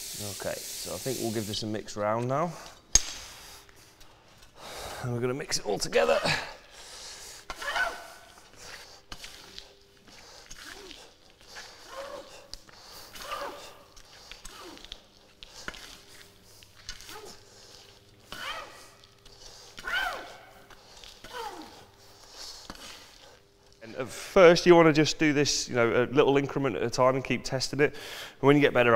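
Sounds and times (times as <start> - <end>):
shuffling footsteps: 7.5 - 24.0.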